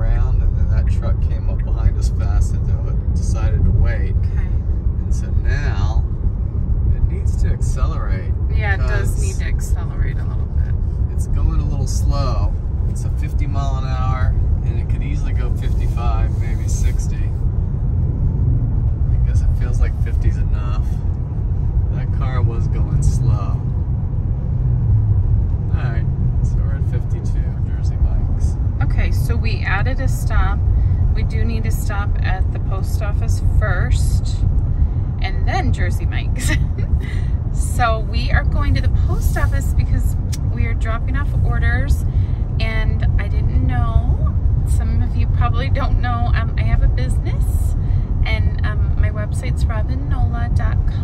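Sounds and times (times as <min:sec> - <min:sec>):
road and tyre rumble in car: 0:00.0 - 0:51.0.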